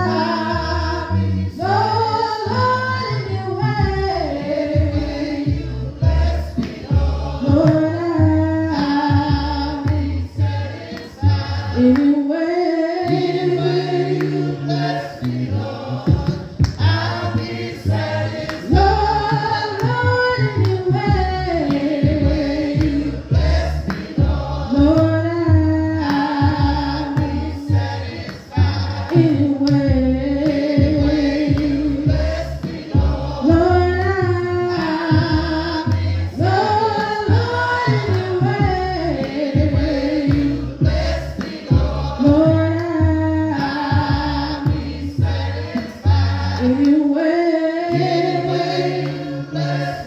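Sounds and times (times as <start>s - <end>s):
congregation singing a hymn: 0.0s - 50.0s.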